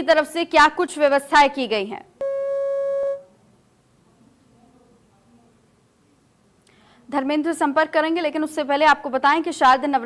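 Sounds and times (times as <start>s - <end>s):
electronic telephone-line beep: 2.2s - 3.3s.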